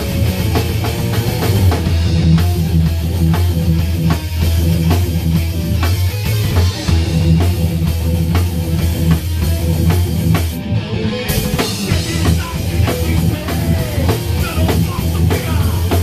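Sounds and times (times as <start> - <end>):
thrash metal band playing: 0.0 - 16.0.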